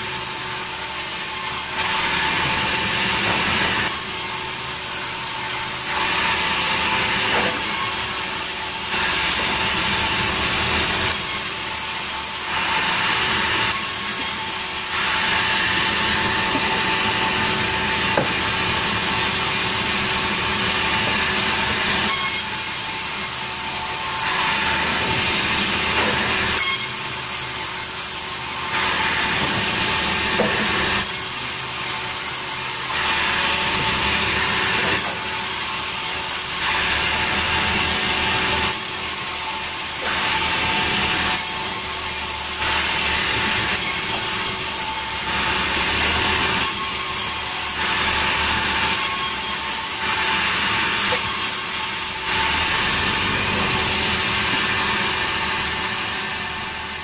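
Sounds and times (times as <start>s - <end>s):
band saw cutting wood: 0.0s - 57.0s.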